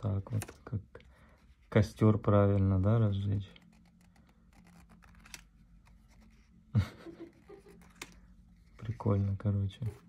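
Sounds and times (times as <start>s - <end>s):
cardboard cards being shuffled: 2.4s - 6.5s, 7.1s - 10.0s.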